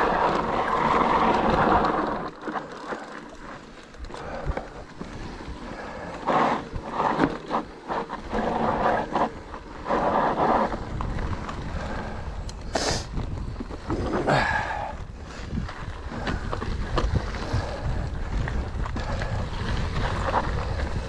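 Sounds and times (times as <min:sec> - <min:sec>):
bike rattling over bumps: 0:00.0 - 0:21.0.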